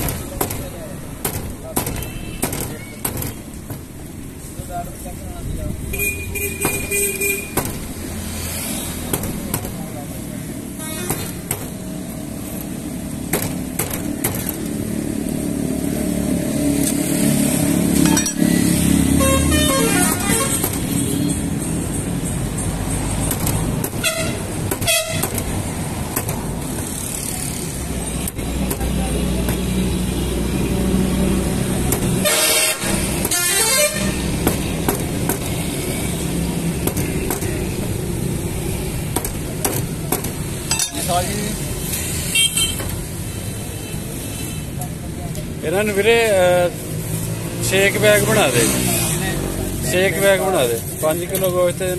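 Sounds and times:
horn toots: 19.0 - 21.4, 24.0 - 25.3, 32.2 - 34.4.

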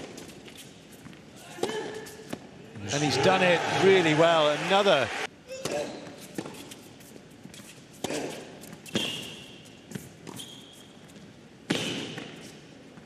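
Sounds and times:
shoes squeaking on court: 5.5 - 12.6.

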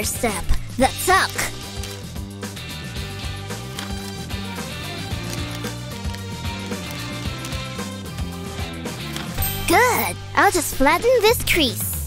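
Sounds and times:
background instrumental music with beat: 0.0 - 12.0.

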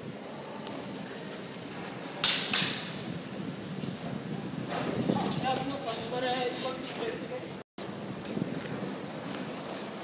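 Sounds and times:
wheels sliding with loud hiss: 0.0 - 2.2, 2.8 - 10.0
longboard wheels rolling on concrete: 0.0 - 10.0.

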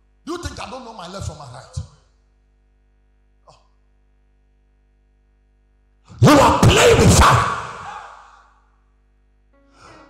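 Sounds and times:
amplified shouting voice: 6.1 - 8.4.

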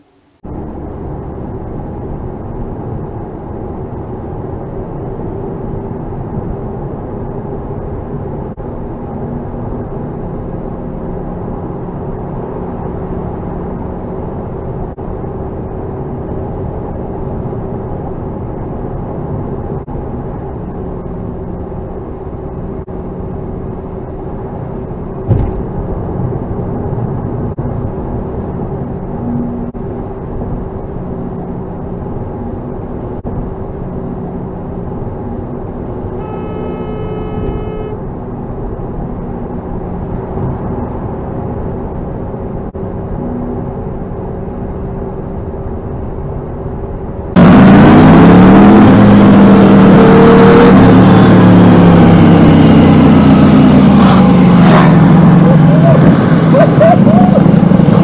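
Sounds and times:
car engine and tyre noise: 0.0 - 58.0
sharp knock: 25.3 - 25.6
car horn: 36.1 - 38.1.

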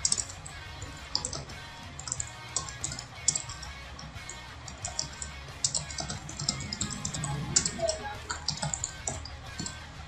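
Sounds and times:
computer keyboard key clicks: 1.1 - 9.8.

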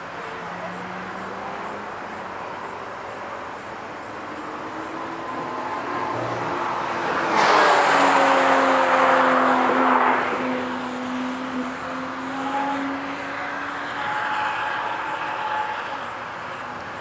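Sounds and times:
racing car engine: 0.0 - 17.0.

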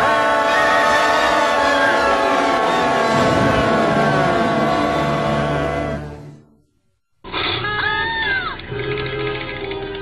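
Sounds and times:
orchestral film music: 0.0 - 6.6.

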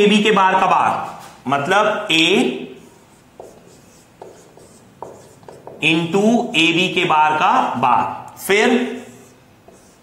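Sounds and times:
marker pen on whiteboard: 2.2 - 7.4, 8.2 - 10.0.

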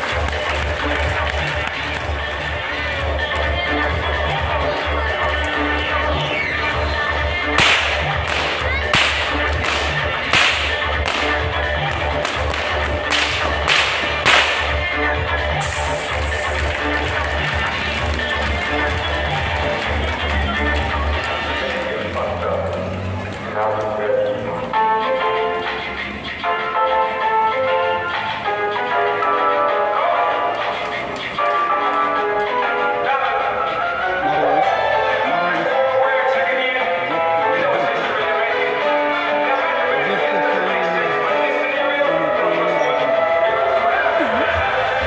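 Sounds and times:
loud music with steady beat: 0.0 - 21.6
whip cracking: 7.6 - 14.9
smoke jet hiss: 15.6 - 16.7.

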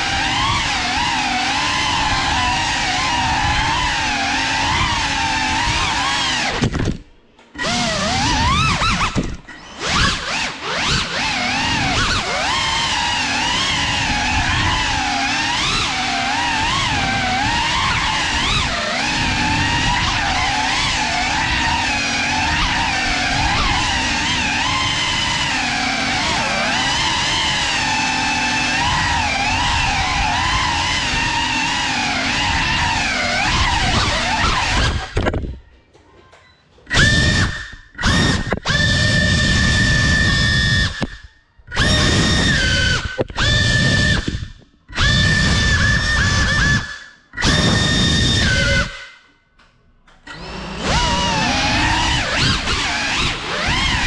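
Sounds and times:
drone motors whining: 0.0 - 35.6, 36.8 - 49.3, 50.1 - 54.0.

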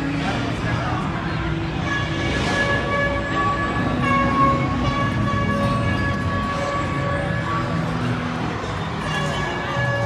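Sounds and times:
background noise: 0.0 - 10.0
held horn-like chord: 1.7 - 10.0.

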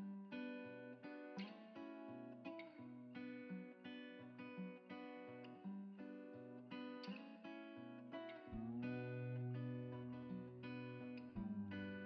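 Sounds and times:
acoustic guitar plucked chords: 0.0 - 12.0.

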